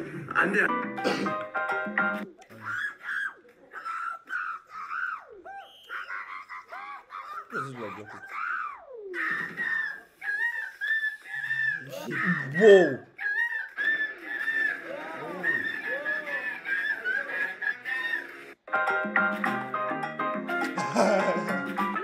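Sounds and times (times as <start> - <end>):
men making whistle-like squeals: 2.7 - 6.2, 8.3 - 18.3.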